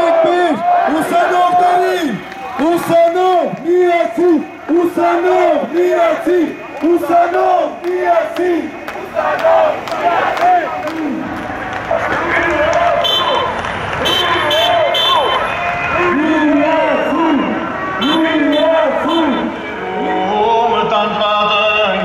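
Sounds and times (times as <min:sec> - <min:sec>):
crowd chanting rhythmic shouts: 0:00.0 - 0:21.4
crowd din of voices: 0:00.0 - 0:22.0.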